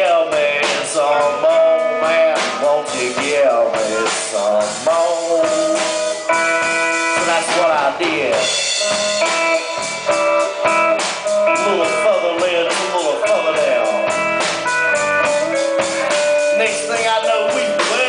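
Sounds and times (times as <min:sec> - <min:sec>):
blues band playing: 0:00.0 - 0:18.0
harmonica bent notes: 0:08.4 - 0:17.0.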